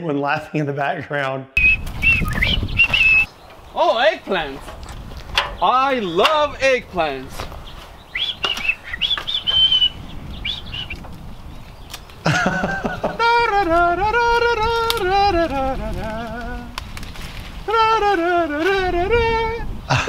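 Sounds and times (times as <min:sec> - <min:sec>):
bird chirps: 0:01.6 - 0:12.3
person laughing: 0:12.2 - 0:14.4.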